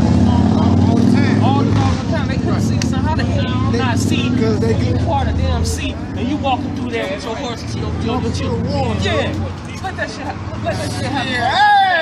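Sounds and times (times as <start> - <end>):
vehicle engine running: 0.0 - 11.4
men talking: 0.0 - 12.0.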